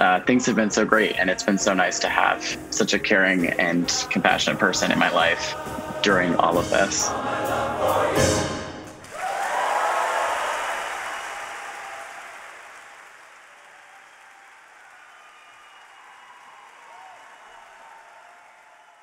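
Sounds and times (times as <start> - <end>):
audience applauding: 8.9 - 19.0.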